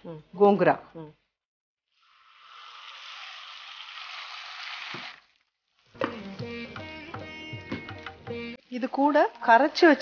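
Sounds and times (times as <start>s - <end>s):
paste sizzling in hot oil: 1.9s - 6.4s, 8.5s - 10.0s.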